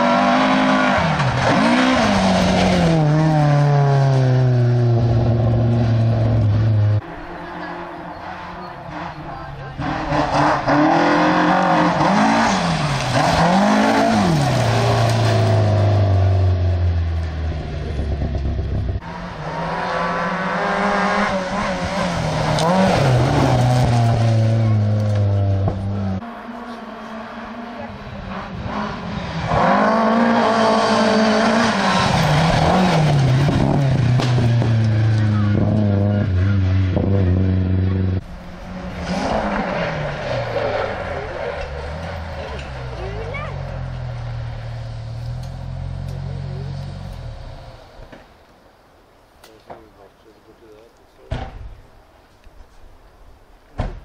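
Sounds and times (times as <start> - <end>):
rally car engines revving: 0.0 - 48.3.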